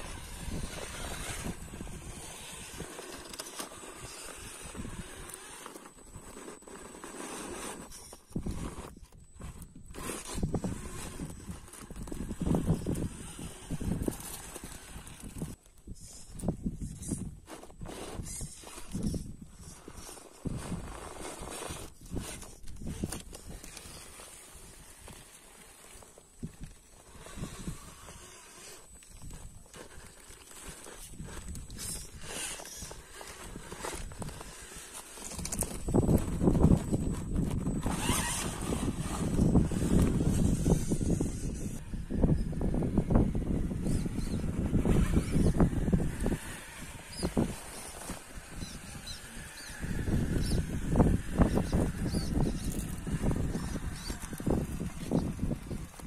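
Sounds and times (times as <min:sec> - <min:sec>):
toy crawler scraping on rock: 0:00.0 - 0:56.0.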